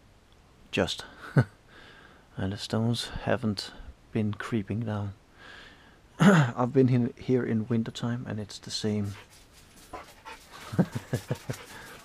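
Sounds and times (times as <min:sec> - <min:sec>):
dog panting: 0:09.0 - 0:12.0.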